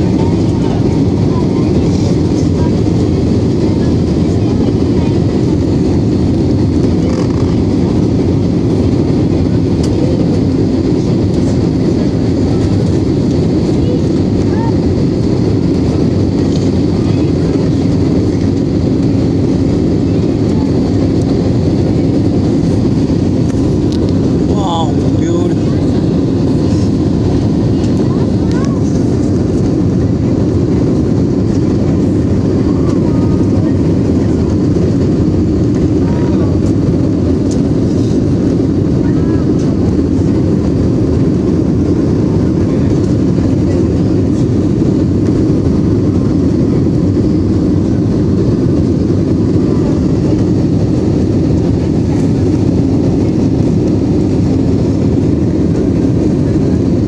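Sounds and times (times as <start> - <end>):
jet airliner cabin noise: 0.0 - 57.0.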